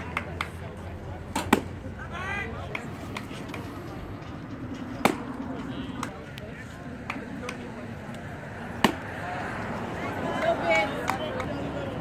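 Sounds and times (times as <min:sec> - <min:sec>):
crowd chatter: 0:00.0 - 0:12.0
baseball smacking into mitt: 0:08.8 - 0:09.1.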